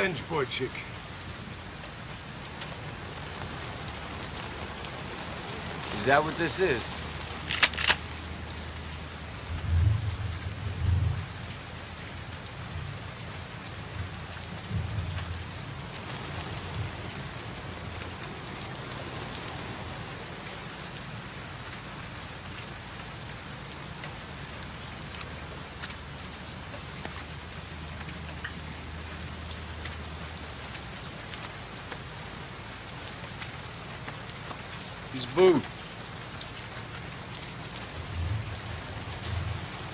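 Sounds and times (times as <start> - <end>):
heavy rain: 0.0 - 39.9
low rumbles of thunder: 9.5 - 11.3.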